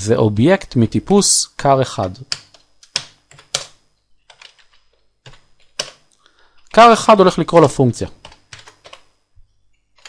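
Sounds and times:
keyboard keystrokes: 2.0 - 6.0, 8.2 - 9.1.

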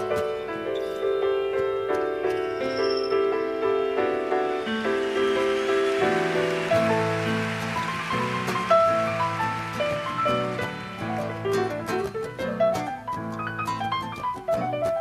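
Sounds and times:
piano: 0.0 - 15.0
nylon-string acoustic guitar: 3.6 - 15.0.

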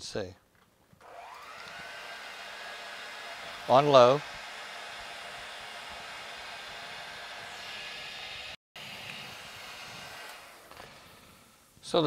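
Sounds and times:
stand mixer running: 1.0 - 8.6.

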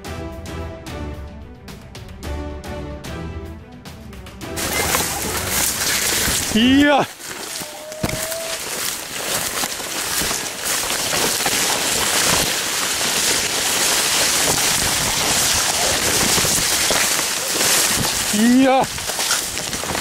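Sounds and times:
stalks rustling and snapping: 4.6 - 20.0.

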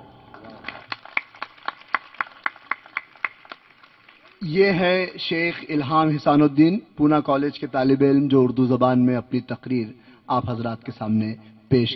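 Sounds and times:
hand clapping: 0.3 - 4.4.

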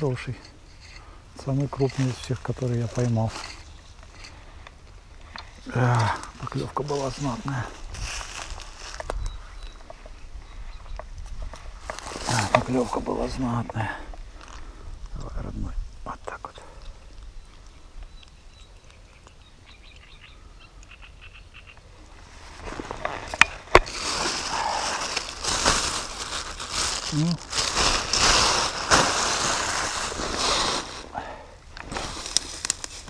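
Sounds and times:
plastic bag crinkling: 23.2 - 31.1.

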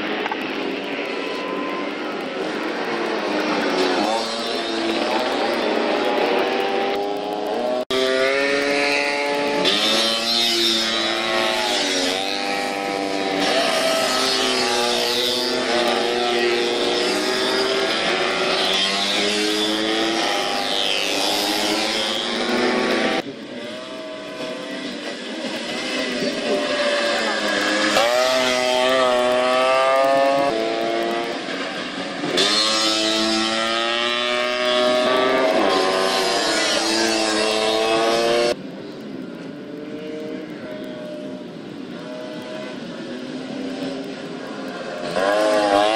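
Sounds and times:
two-stroke scooter engines racing: 0.0 - 45.9.

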